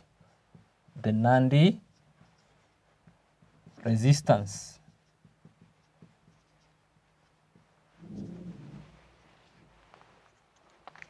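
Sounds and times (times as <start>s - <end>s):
marker pen on whiteboard: 0.0s - 11.0s.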